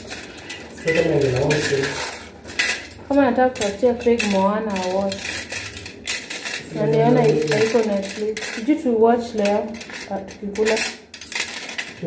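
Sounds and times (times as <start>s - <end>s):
metal cutlery clinking: 0.0s - 12.0s.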